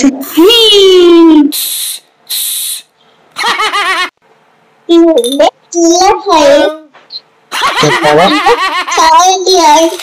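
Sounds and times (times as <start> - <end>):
vocal hisses: 1.5 - 2.9.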